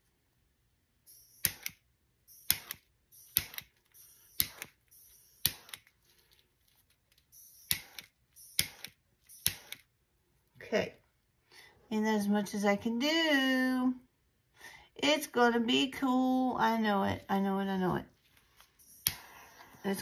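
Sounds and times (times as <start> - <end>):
sharp clicks with hiss: 1.4 - 1.8, 2.4 - 3.7.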